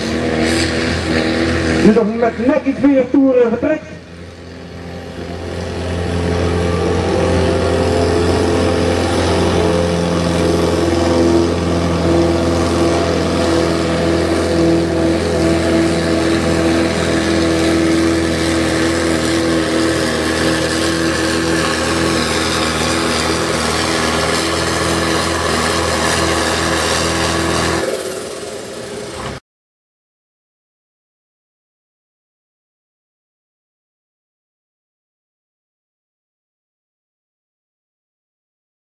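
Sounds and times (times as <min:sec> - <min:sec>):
tractor diesel engine revving hard: 0:00.0 - 0:29.4.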